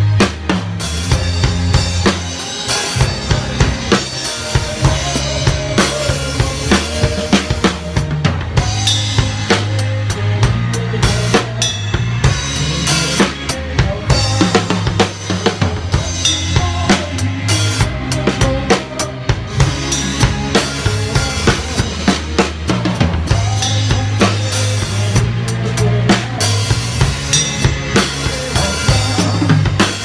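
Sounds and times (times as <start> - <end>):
rock band backing with bass: 0.0 - 30.0
rock drum beat: 0.0 - 30.0.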